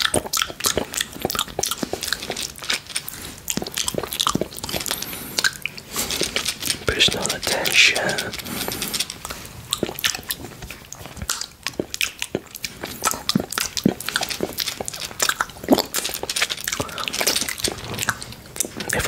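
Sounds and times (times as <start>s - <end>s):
wet mouth sounds: 0.0s - 19.0s.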